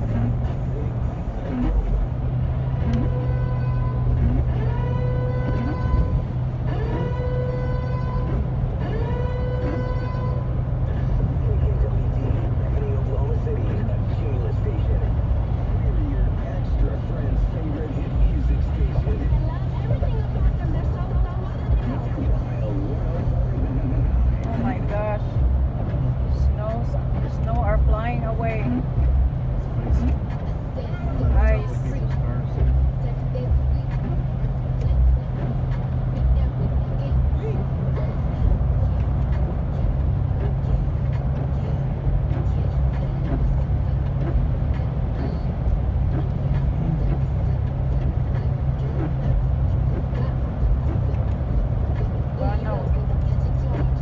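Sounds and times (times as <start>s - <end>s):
car cabin road rumble: 0.0s - 54.0s
tyres on wet road: 0.0s - 54.0s.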